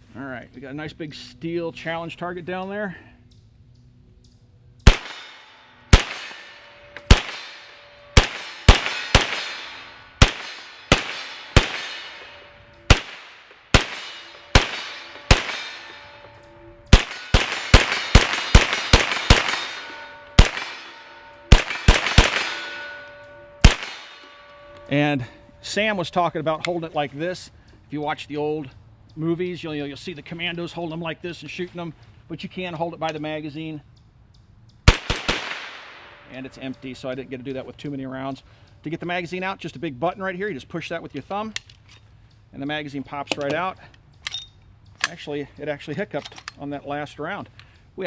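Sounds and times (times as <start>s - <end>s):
gunshots: 4.8s - 16.1s, 16.9s - 22.9s, 23.6s - 24.2s, 34.9s - 36.2s
steel target ringing: 4.8s - 26.6s, 34.9s - 37.6s.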